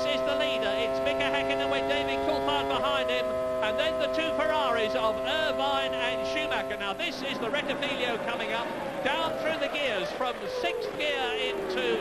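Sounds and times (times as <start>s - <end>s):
racing car engine whine: 0.0s - 12.0s
commentary speech: 0.1s - 12.0s.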